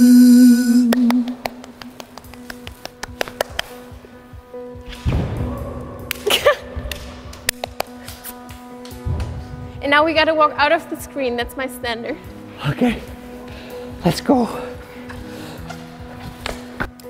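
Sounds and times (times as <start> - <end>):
short vocal sound: 0.0 - 1.3.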